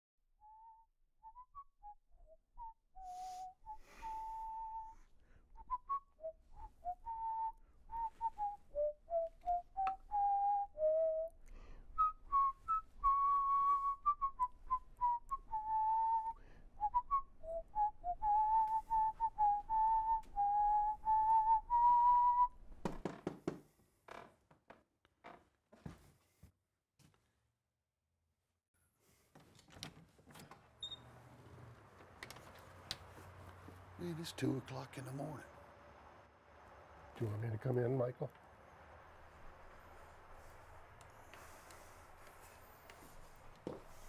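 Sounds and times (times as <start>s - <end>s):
person whistling a slow tune: 0.4s - 22.6s, 41.2s - 44.0s.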